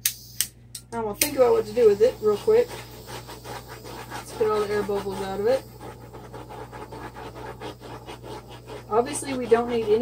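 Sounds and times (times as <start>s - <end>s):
torch flame hissing: 1.3s - 10.0s.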